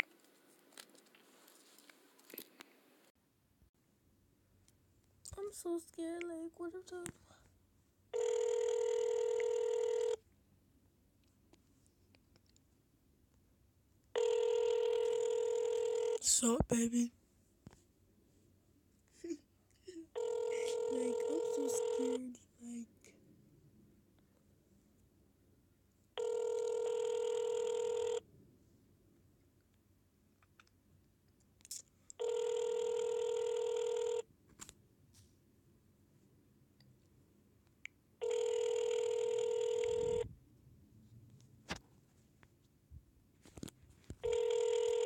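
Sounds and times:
telephone ringback tone: 8.1 - 10.2, 14.2 - 16.2, 20.2 - 22.4, 26.2 - 28.2, 32.2 - 34.2, 38.2 - 40.2, 44.2 - 45.0.

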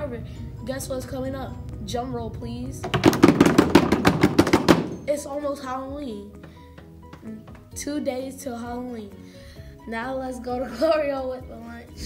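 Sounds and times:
drum roll: 2.8 - 5.1.

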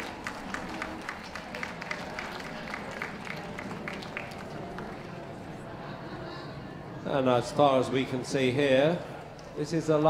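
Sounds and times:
scattered crowd applause: 0.0 - 6.0.

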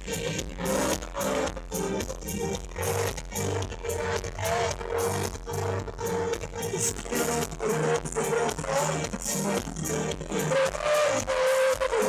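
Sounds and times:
live pop-rock band playing: 0.0 - 12.0.

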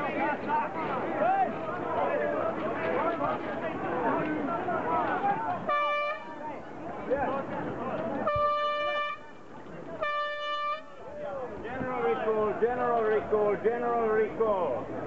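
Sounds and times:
men talking: 0.0 - 15.0
horn blasts: 5.6 - 6.4, 8.2 - 9.4, 10.0 - 11.0.

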